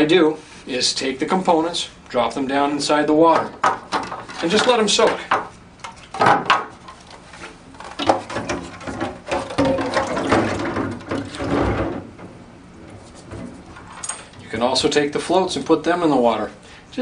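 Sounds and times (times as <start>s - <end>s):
plastic parts clattering: 6.1s - 12.1s
water sloshing: 6.8s - 15.9s
plastic knocking on steel sink: 8.0s - 12.3s.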